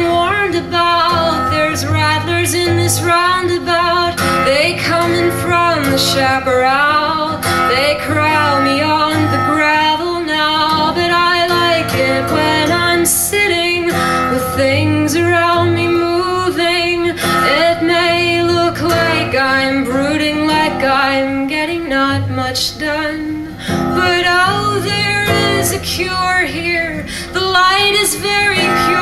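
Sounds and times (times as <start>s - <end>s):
acoustic guitar strumming: 0.0s - 29.0s
woman singing: 0.0s - 29.0s.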